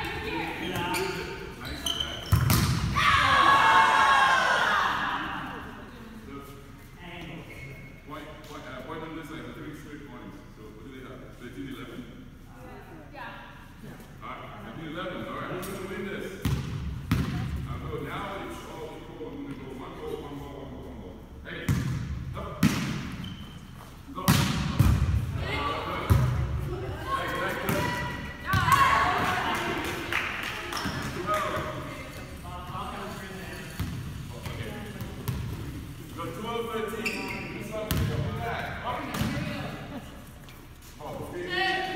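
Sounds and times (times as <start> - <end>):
players' voices: 24.0 - 41.9.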